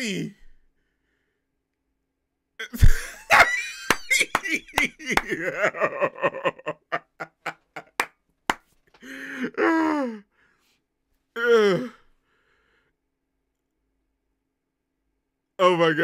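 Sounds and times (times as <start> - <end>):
man laughing hard: 2.7 - 8.1
sharp slaps: 2.9 - 5.4.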